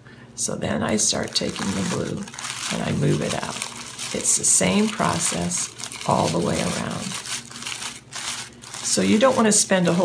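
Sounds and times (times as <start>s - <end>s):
paper crinkling and rustling: 0.9s - 10.0s.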